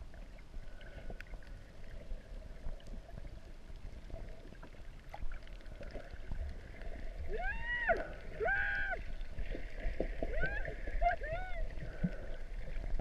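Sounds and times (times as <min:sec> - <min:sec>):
low rumble of water: 0:00.0 - 0:13.0
underwater pitched calls: 0:07.3 - 0:09.2, 0:10.2 - 0:12.3.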